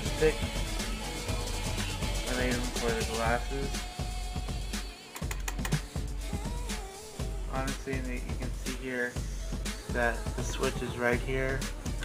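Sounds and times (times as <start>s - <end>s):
plastic stick clicks and taps: 5.1s - 5.8s.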